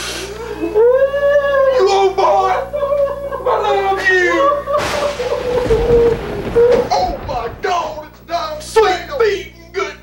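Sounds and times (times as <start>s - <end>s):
person wailing: 0.4s - 7.5s.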